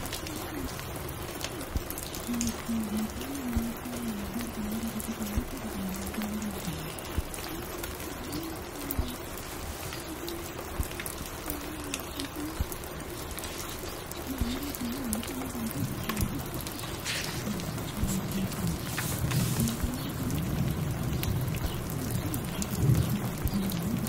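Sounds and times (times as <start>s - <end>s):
soft clicks and crackles: 0.0s - 24.0s
steady rain: 0.0s - 24.0s.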